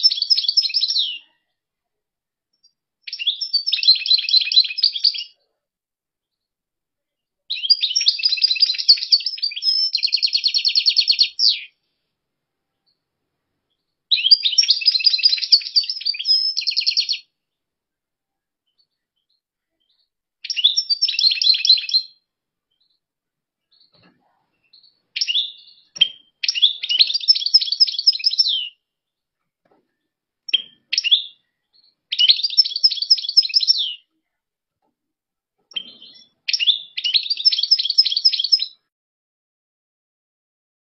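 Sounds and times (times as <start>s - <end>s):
goldfinch twittering song: 0.0s - 1.2s, 2.6s - 5.4s, 7.5s - 11.8s, 13.7s - 17.3s, 18.7s - 23.0s, 23.7s - 24.0s, 24.6s - 28.8s, 30.5s - 34.1s, 35.7s - 38.8s
short bird calls: 0.0s - 1.6s, 13.7s - 17.4s, 23.7s - 28.8s.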